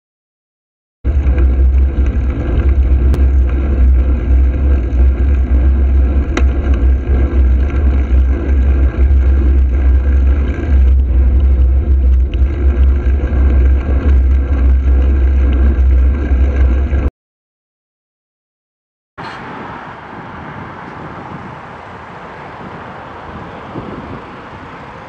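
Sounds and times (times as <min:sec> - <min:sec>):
road noise: 0:01.0 - 0:17.1, 0:19.2 - 0:25.0
wind buffeting microphone: 0:01.1 - 0:17.1, 0:19.2 - 0:25.0.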